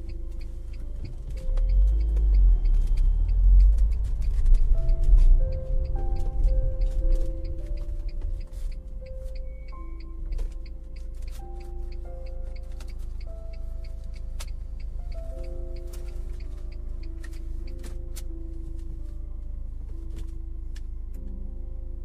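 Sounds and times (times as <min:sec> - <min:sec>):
slow ambient music: 0:00.0 - 0:22.0
steady low rumble: 0:00.0 - 0:22.0.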